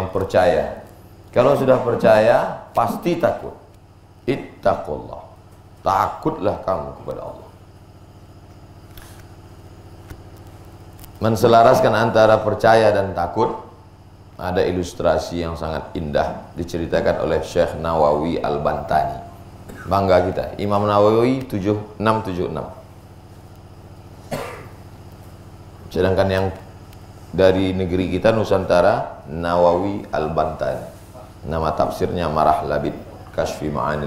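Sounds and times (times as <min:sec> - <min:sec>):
low electrical hum: 0:00.0 - 0:34.0
small engine idling: 0:13.3 - 0:34.0.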